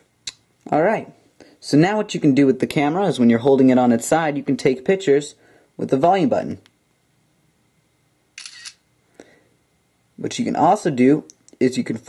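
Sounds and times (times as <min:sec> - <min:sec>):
camera shutter click: 0:08.4 - 0:08.8.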